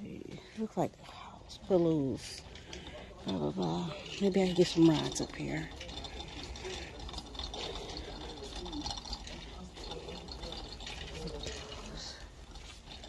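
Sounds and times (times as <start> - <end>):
shopping cart wheels rumbling: 0.0 - 13.0.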